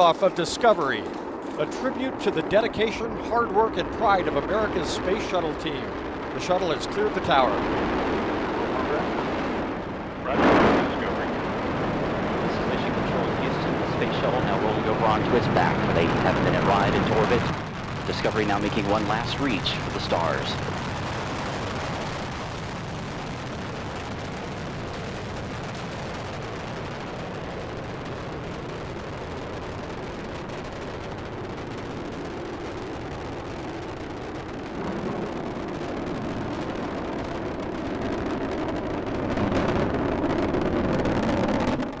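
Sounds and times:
rocket roar: 0:00.0 - 0:42.0.

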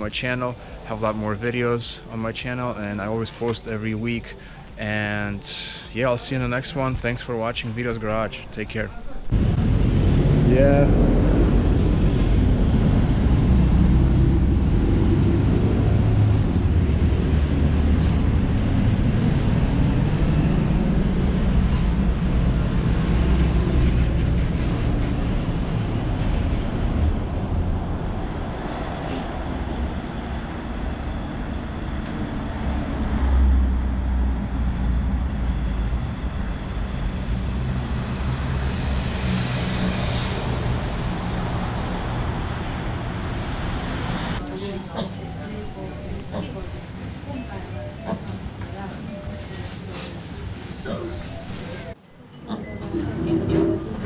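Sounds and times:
street traffic rumble: 0:00.0 - 0:54.0.

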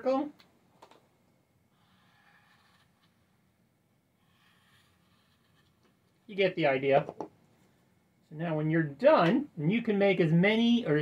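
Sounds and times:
marker scratching on cardstock: 0:01.8 - 0:03.2, 0:04.2 - 0:05.8.

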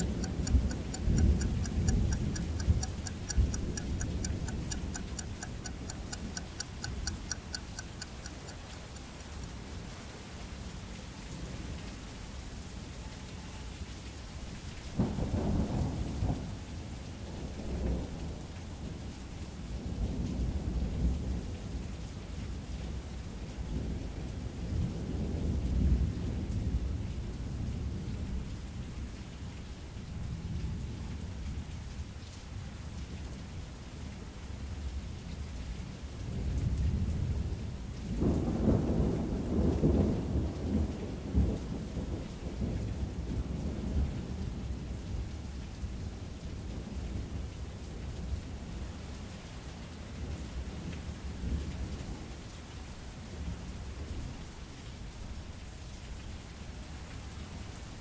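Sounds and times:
steady rain hiss: 0:00.0 - 0:58.0
rolling thunder rumbles: 0:15.0 - 0:18.5, 0:36.5 - 0:44.6.

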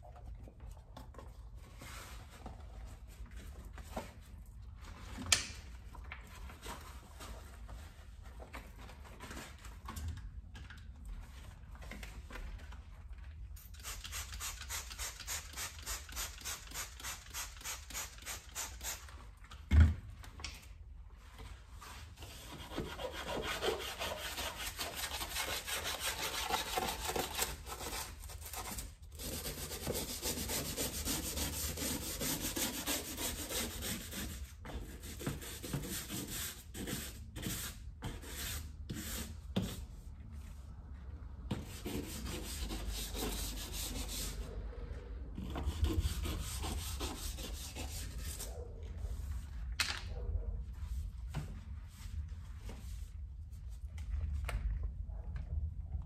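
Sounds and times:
scratchy rubbing of scrubbing: 0:22.3 - 0:39.8, 0:45.4 - 0:48.5.

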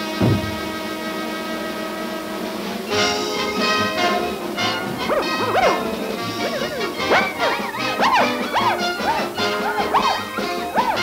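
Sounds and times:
cartoon soundtrack music: 0:02.9 - 0:11.0
short yelp-like sounds: 0:05.0 - 0:11.0.

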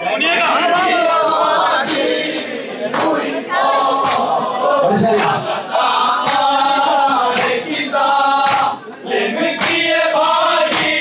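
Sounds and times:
men chanting in unison: 0:00.2 - 0:11.0.

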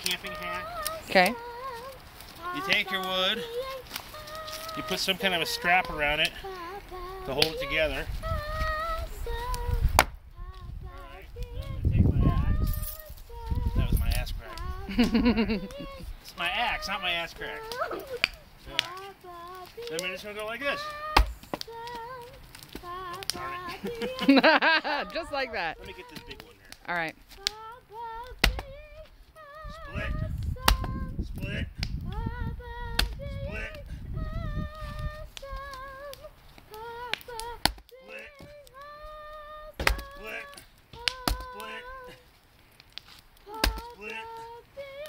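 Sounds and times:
child singing: 0:00.0 - 0:26.6, 0:27.3 - 0:42.3, 0:43.4 - 0:45.0
axe chopping firewood: 0:10.0 - 0:10.2, 0:21.1 - 0:23.5, 0:28.4 - 0:28.7, 0:30.7 - 0:31.0, 0:37.1 - 0:38.5, 0:39.8 - 0:41.8, 0:42.9 - 0:44.2.

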